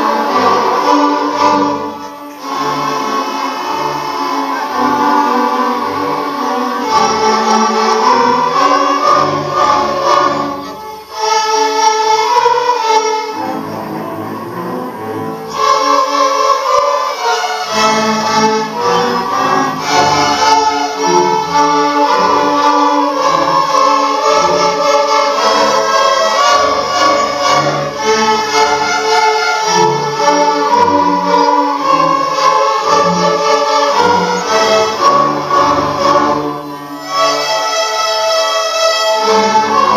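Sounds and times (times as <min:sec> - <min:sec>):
string orchestra playing: 0:00.0 - 0:39.9.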